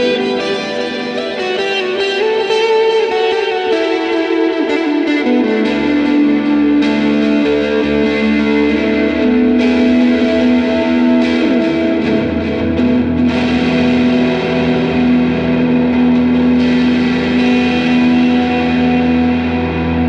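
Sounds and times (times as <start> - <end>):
electric guitar chords with reverb: 0.0 - 20.0.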